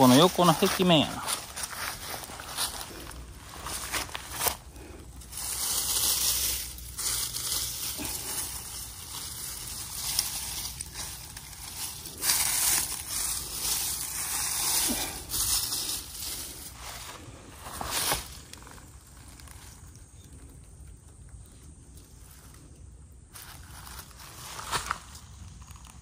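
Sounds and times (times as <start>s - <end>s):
dry leaves and grass rustling: 0.0s - 26.0s.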